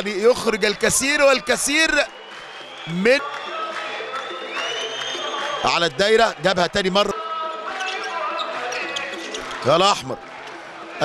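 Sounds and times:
crowd noise in arena: 0:00.0 - 0:11.0.

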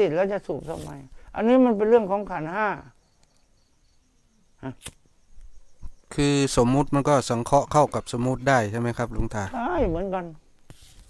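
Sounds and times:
sharp click: 0:04.8 - 0:05.5.

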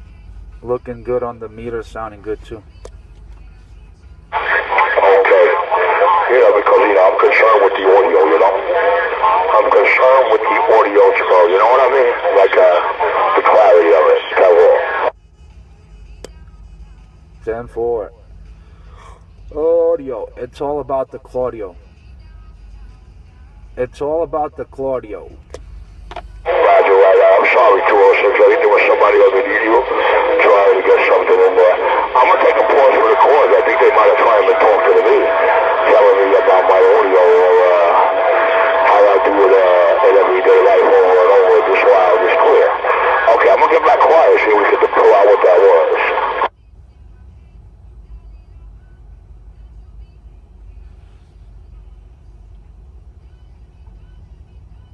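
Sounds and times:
voice over radio speaker: 0:00.6 - 0:02.8, 0:04.3 - 0:15.1, 0:17.4 - 0:18.2, 0:19.0 - 0:21.9, 0:23.8 - 0:25.5, 0:26.4 - 0:46.5.

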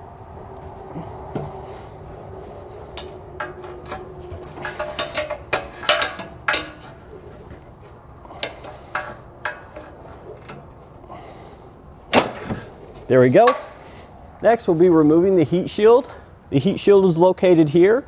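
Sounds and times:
metallic clicks and clanks: 0:02.9 - 0:07.1, 0:08.3 - 0:10.7.

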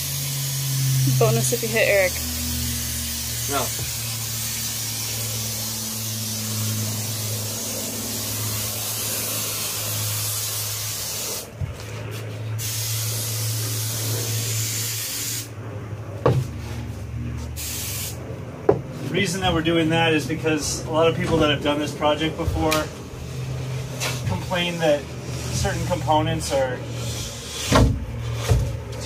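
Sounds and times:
aerosol spray hissing: 0:00.0 - 0:11.5, 0:12.6 - 0:15.5, 0:17.6 - 0:18.2
steady low hum: 0:00.0 - 0:29.0.

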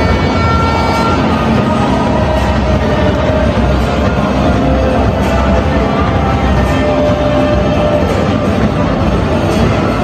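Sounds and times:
held horn-like tone: 0:00.0 - 0:10.0
music over loudspeakers: 0:00.0 - 0:10.0
stadium crowd noise: 0:00.0 - 0:10.0.

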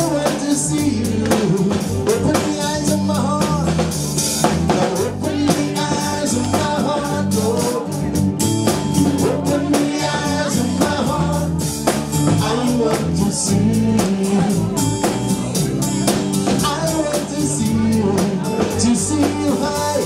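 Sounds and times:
man singing into microphone: 0:00.0 - 0:04.0, 0:04.7 - 0:15.6, 0:16.4 - 0:20.0
band playing: 0:00.0 - 0:20.0
drum kit steady beat: 0:00.0 - 0:20.0.

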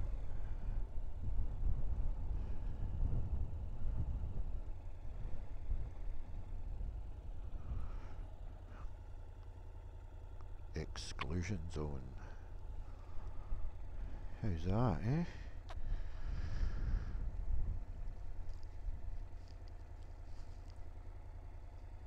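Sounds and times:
motorcycle engine low rumble: 0:00.0 - 0:22.0.

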